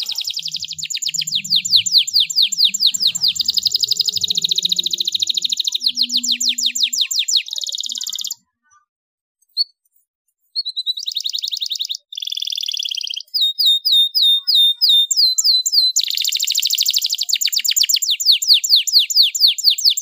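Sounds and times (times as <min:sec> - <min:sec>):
repeated swooping bird notes: 0:00.0 - 0:07.5
canary singing trills: 0:00.0 - 0:08.5, 0:10.5 - 0:20.0.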